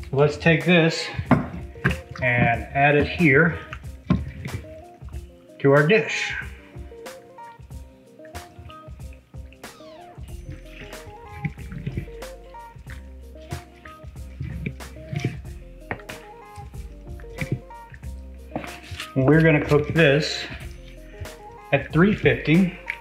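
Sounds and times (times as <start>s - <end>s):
background music: 0.0s - 23.0s
wet squishing and dripping: 1.1s - 5.8s, 6.4s - 23.0s.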